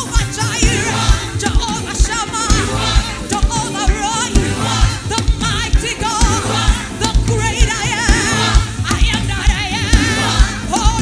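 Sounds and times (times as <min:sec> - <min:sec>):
band with steady beat: 0:00.0 - 0:11.0
group of singers with vibrato: 0:00.0 - 0:11.0.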